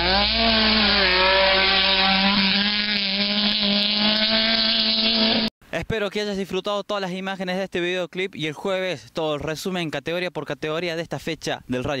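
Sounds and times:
car engine at high revs: 0:00.0 - 0:05.5.

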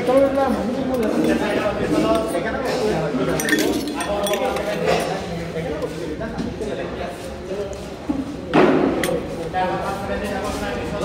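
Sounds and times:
spoon clinking on steel bowls: 0:00.0 - 0:05.2
people talking in background: 0:00.0 - 0:11.0.

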